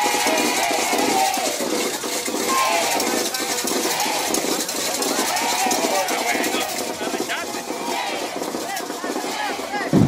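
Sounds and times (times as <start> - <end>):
drum and metallic percussion: 0.0 - 10.0
large crowd voices: 0.0 - 10.0
marching band playing: 0.0 - 10.0.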